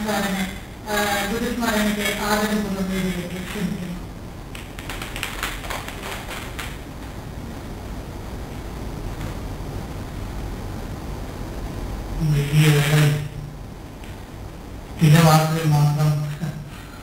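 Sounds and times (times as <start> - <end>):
room hiss: 0.0 - 17.0.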